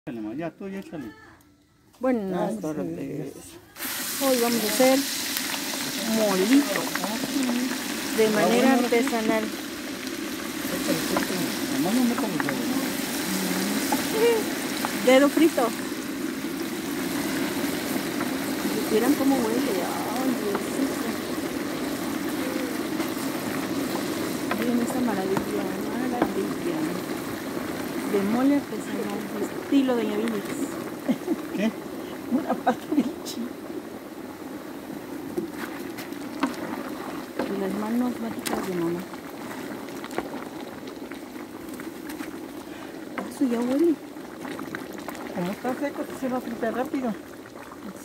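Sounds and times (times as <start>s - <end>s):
paste sizzling in hot oil: 3.6s - 48.0s
sharp crackles: 3.7s - 48.0s.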